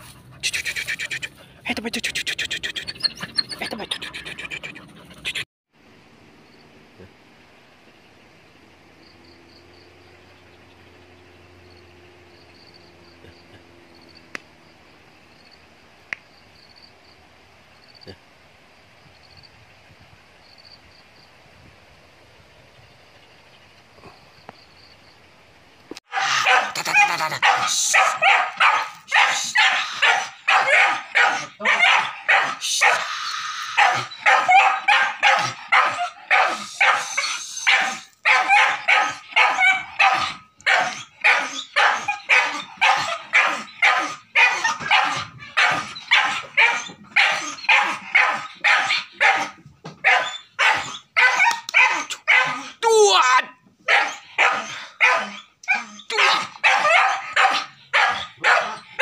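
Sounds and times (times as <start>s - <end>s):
dog whining: 2.6s - 5.4s
dog barking rapidly: 26.1s - 59.0s.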